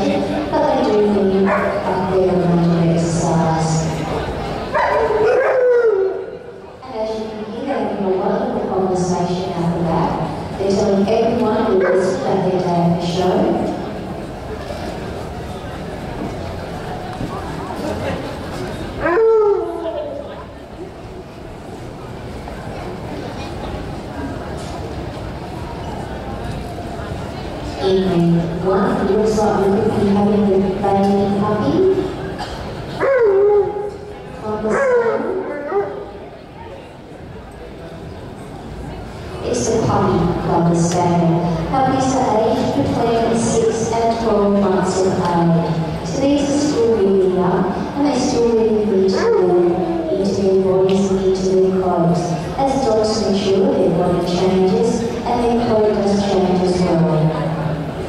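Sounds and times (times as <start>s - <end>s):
dog howling: 19.0s - 19.9s.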